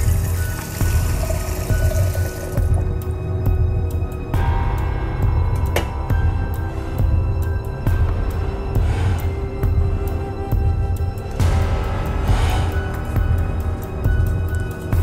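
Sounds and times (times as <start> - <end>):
tap water running into a mug: 0.0 - 2.9
background music: 0.0 - 15.0.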